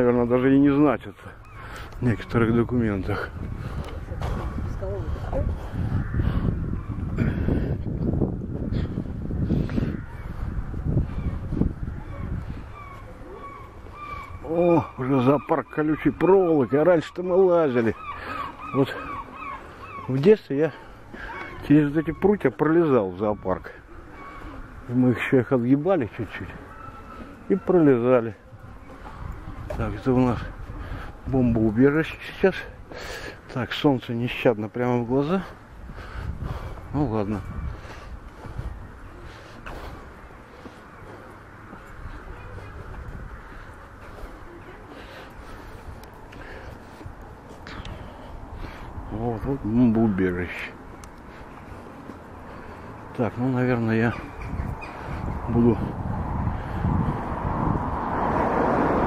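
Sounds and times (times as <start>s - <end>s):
low street rumble and hiss: 22.4s - 59.0s.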